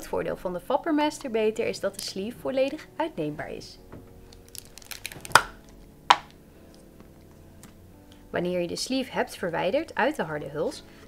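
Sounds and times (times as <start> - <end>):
plastic cap clicks and rustles: 4.3 - 6.4.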